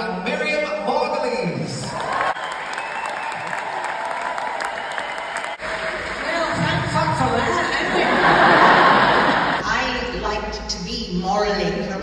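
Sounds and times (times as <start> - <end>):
audience applauding: 1.8 - 9.6.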